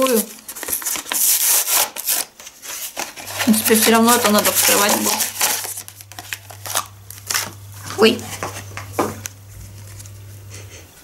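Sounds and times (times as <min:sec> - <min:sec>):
packaging crinkling and rustling: 0:00.0 - 0:10.3.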